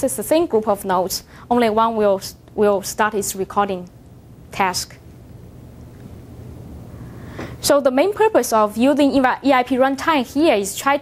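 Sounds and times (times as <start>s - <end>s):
faint hum: 0.0s - 11.0s
low room rumble: 0.0s - 11.0s.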